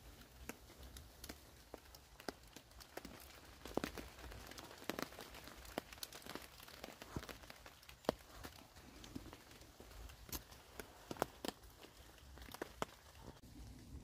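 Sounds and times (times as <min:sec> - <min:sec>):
water drips on tarp and leaves: 0:00.0 - 0:14.0.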